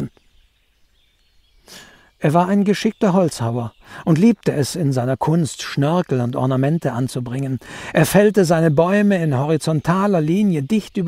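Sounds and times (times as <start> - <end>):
faint steady hiss: 0.0 - 11.0
person breathing in: 1.7 - 2.2, 3.8 - 4.1, 7.6 - 8.0.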